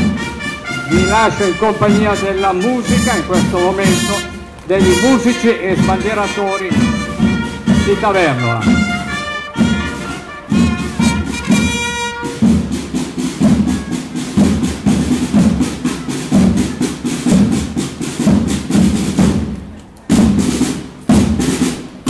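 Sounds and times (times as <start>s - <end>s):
brass fanfare: 0.0s - 12.9s
marching drums beating: 0.0s - 22.0s.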